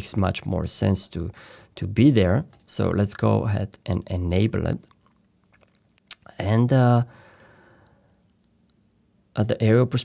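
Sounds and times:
man's breathy exhale: 7.1 - 8.1.

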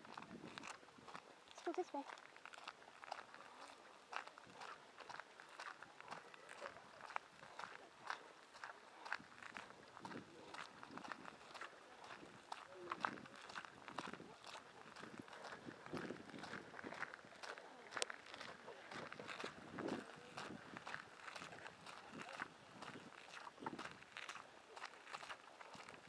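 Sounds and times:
footsteps on gravel: 0.1 - 26.0.

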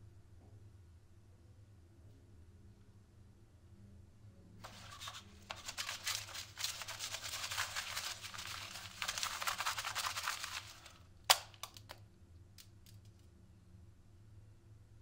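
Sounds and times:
paper being crumpled: 4.6 - 11.9
sharp snap: 11.3 - 12.0.

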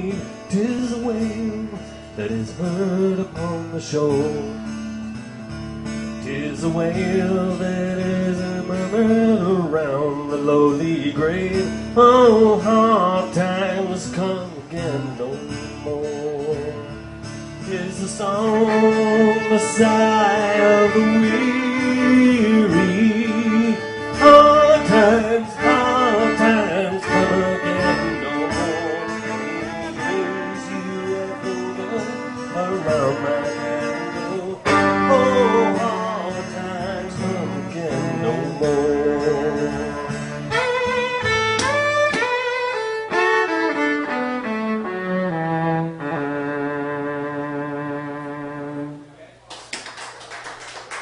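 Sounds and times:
looped guitar accompaniment: 0.0 - 49.4
electric violin melody: 18.2 - 38.6, 39.5 - 49.1
bowed fiddle note: 18.5 - 36.0
irregular sharp taps and clatter: 41.6 - 42.4.

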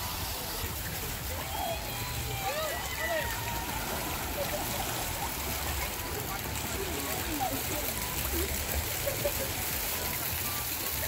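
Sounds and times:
distant crowd voices: 0.0 - 11.0
water rushing down a slide: 0.0 - 11.0.

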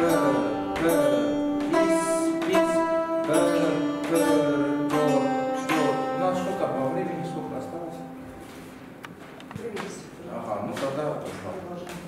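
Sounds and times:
plucked zither notes: 0.0 - 8.9.

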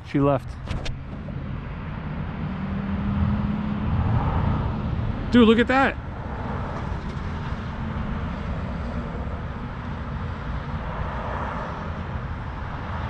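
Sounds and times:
distant engine rumble: 0.0 - 12.9.

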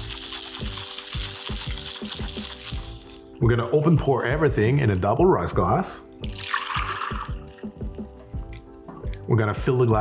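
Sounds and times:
drink pouring into glass: 0.0 - 3.4, 6.2 - 9.3
background music with steady beat: 0.0 - 10.0.

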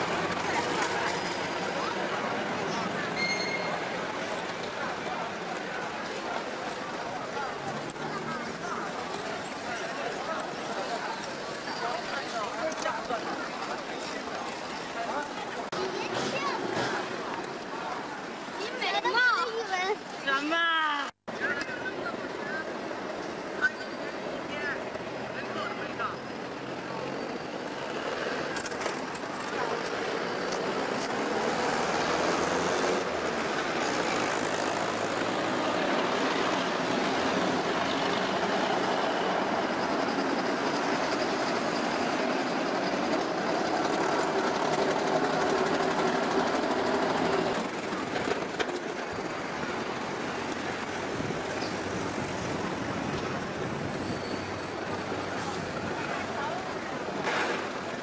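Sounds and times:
traffic engine noise: 0.0 - 58.0
bus passing close by: 26.6 - 58.0.

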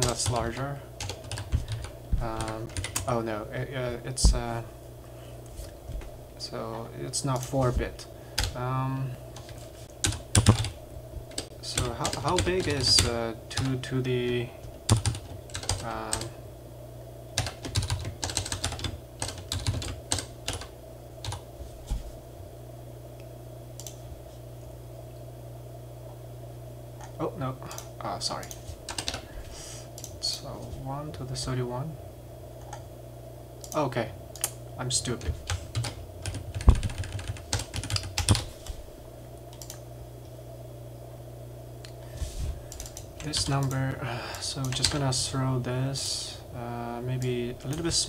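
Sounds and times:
typing on computer keyboard: 0.0 - 3.1, 10.0 - 10.7, 14.9 - 16.3, 17.4 - 21.4, 28.4 - 29.2, 35.5 - 38.4, 42.7 - 43.7
steady low hum: 0.0 - 48.0.

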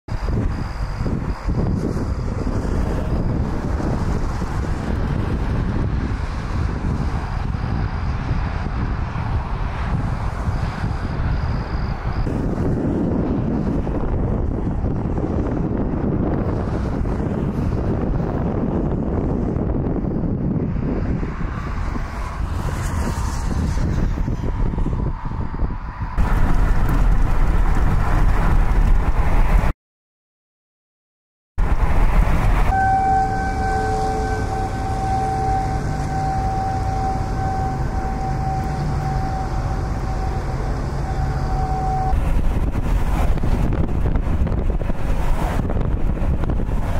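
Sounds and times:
low rumble: 0.1 - 29.7, 31.6 - 46.9
wind buffeting microphone: 0.1 - 29.7, 31.6 - 46.9.

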